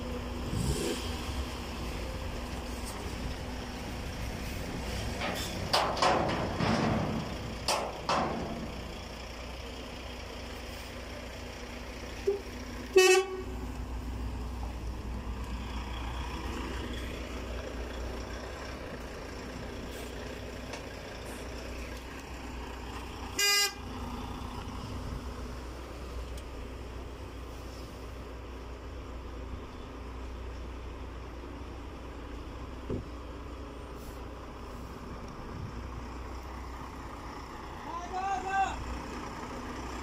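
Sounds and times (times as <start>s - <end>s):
low engine rumble: 0.0s - 40.0s
vehicle horn toots: 12.3s - 13.6s, 23.4s - 23.8s.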